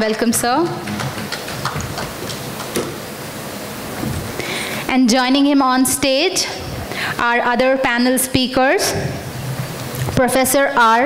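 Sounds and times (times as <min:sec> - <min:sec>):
audience applauding: 0:00.1 - 0:03.0.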